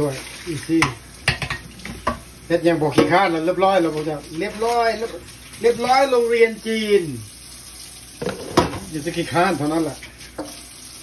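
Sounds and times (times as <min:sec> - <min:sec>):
running tap water: 0:00.0 - 0:11.0
metal pot clanking in a sink: 0:00.8 - 0:02.2, 0:08.2 - 0:08.9.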